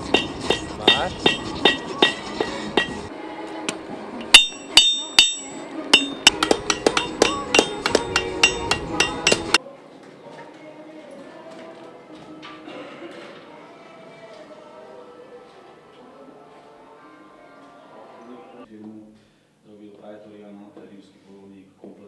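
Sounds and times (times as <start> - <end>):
hammers clanging on anvil: 0.0 - 3.1, 4.3 - 9.6.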